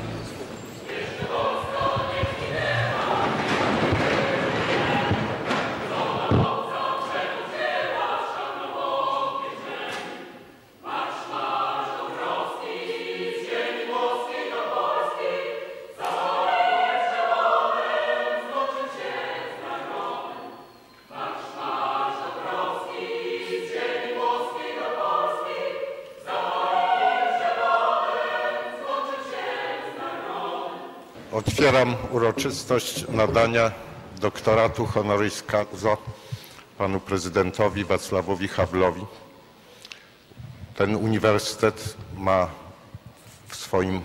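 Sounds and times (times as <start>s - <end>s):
choir singing: 0.0s - 36.0s, 36.8s - 39.6s.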